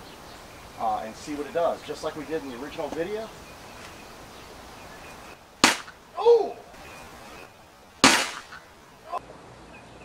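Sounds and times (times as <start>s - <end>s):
wooden stick striking metal helmet: 5.6s - 6.0s, 8.0s - 8.5s.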